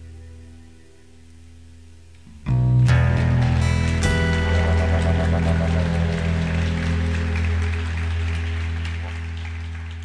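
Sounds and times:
band chord ringing out: 2.5 - 9.7
scattered applause: 3.2 - 10.0.

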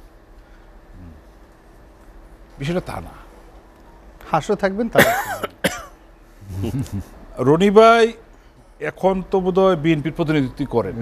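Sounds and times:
man clearing his throat: 5.0 - 6.0
man speaking: 8.8 - 11.0.

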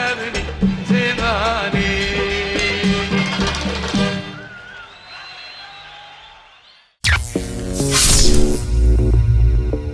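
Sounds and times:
electronic logo sting: 7.0 - 9.2.

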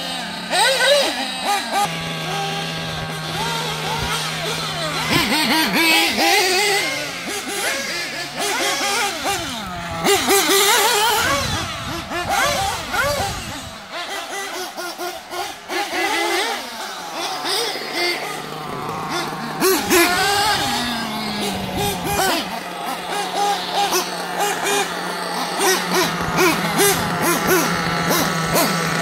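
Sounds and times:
small rc car engines revving: 0.0 - 29.0.

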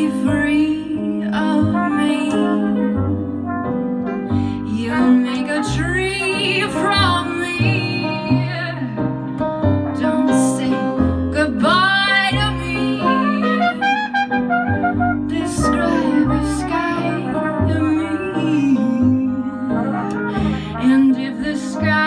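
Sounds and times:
jazz band playing: 0.0 - 22.0
trumpet melody: 1.3 - 8.1, 9.7 - 11.0, 11.6 - 22.0.

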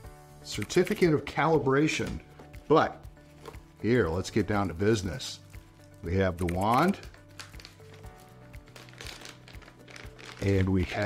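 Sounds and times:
background music: 0.0 - 11.0
plastic bag crinkling: 5.8 - 11.0.

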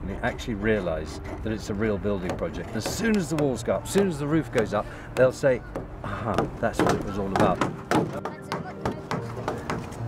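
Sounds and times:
wooden mallets knocking on timber: 1.2 - 10.0.

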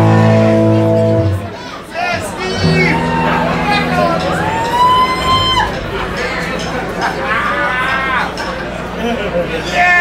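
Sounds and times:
crowd noise: 0.0 - 10.0
person yelling whoop: 4.4 - 5.8.

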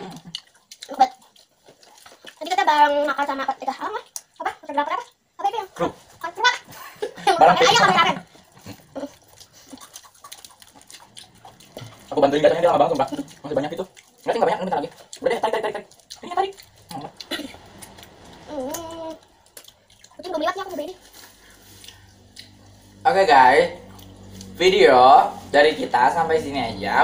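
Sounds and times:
faint chewing: 0.0 - 27.0
low steady hum: 0.0 - 27.0
soft mouth clicks: 21.8 - 22.6.

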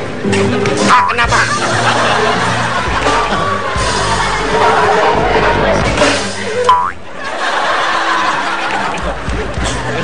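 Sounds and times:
background music: 0.0 - 10.0
cartoon boing spring effect: 6.7 - 7.0.

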